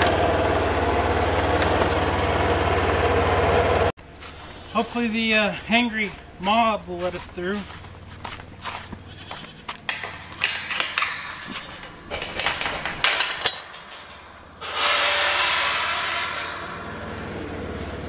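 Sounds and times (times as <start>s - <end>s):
utility vehicle engine running: 0.0s - 4.5s, 16.6s - 18.0s
goats bleating: 8.6s - 9.8s
metal gate clanking and rattling: 9.8s - 18.0s.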